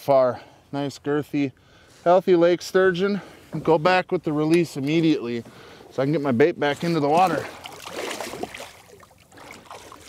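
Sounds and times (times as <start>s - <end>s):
water splashing and sloshing: 4.5s - 10.0s.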